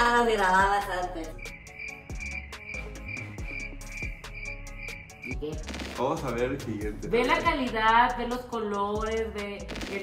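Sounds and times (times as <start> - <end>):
crickets chirping: 0.0 - 5.5
music beat with deep bass: 0.0 - 10.0.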